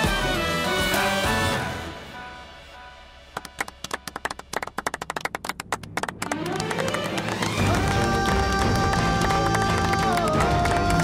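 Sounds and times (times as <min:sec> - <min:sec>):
people clapping: 0:03.4 - 0:11.0
dramatic background music: 0:05.8 - 0:11.0.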